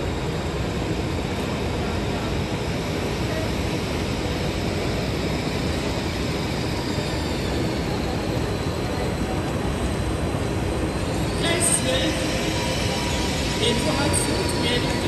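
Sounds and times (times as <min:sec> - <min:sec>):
train rumbling into station: 0:00.0 - 0:15.0
crowd noise: 0:00.8 - 0:15.0.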